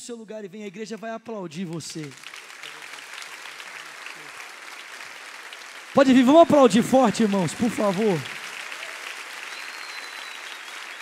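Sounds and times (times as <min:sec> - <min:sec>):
congregation applauding: 0:01.7 - 0:11.0.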